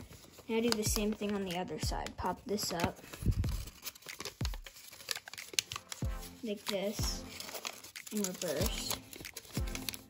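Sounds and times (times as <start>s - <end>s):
paper crinkling and crackling: 0.0s - 10.0s
dull low thumps: 3.3s - 3.7s.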